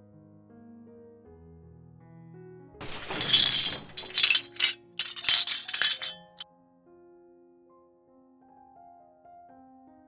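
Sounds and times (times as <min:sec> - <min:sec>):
glass shattering: 0:02.8 - 0:06.4.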